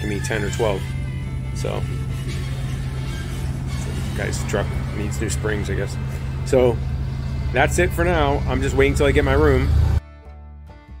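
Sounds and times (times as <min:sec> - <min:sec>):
pickup truck engine running: 0:00.0 - 0:10.0.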